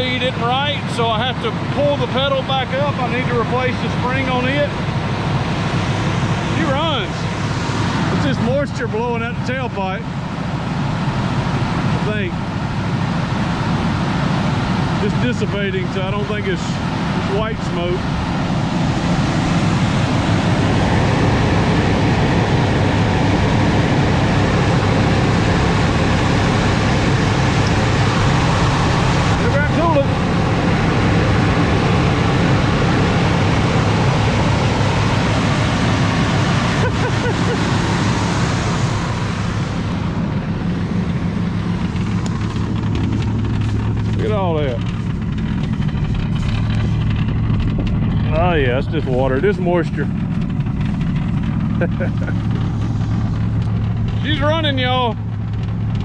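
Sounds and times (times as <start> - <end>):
car engine running roughly: 0.0 - 56.0.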